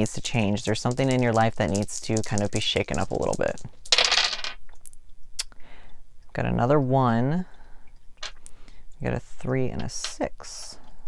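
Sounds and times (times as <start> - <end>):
dice clattering on wooden table: 0.0 - 4.6, 8.2 - 8.4.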